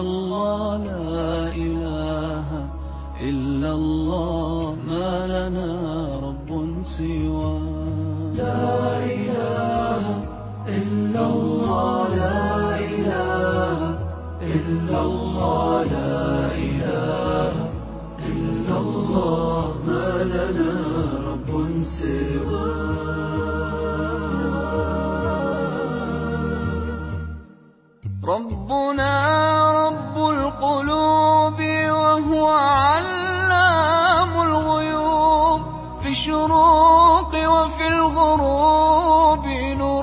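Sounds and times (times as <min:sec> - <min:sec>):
steady low drone: 0:00.0 - 0:27.6
voice chanting melismatic lines: 0:08.3 - 0:28.0.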